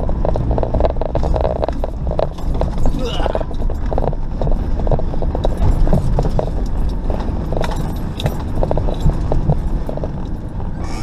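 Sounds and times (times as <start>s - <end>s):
body and suspension rattles: 0.0s - 11.0s
vehicle engine and tyre noise: 0.0s - 11.0s.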